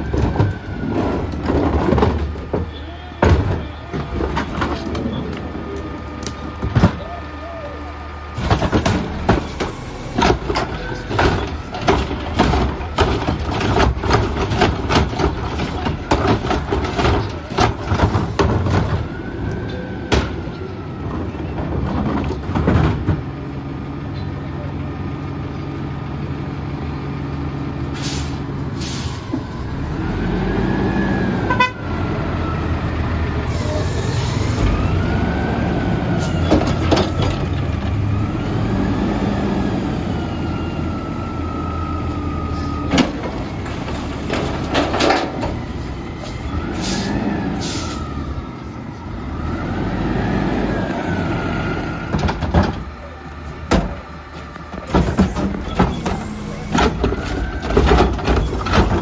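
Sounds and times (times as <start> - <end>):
garbage truck engine revving: 25.9 - 59.0.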